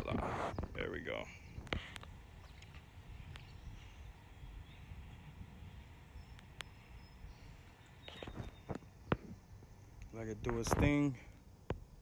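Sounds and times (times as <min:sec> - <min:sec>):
faint clicks: 0:01.6 - 0:03.5, 0:06.3 - 0:06.8.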